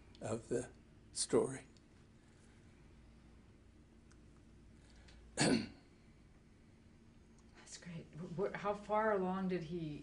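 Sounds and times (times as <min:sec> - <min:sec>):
man clearing throat: 0:05.4 - 0:05.9.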